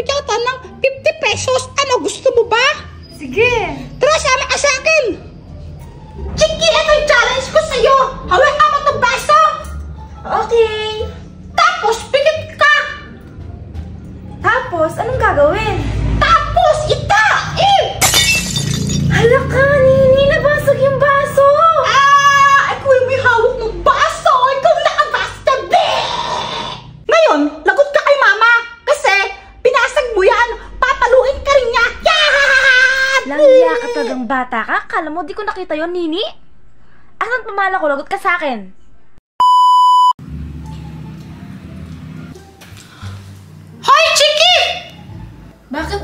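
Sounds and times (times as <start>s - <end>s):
drinking glass shattering: 18.0s - 19.2s
electronic bleep: 39.4s - 40.1s.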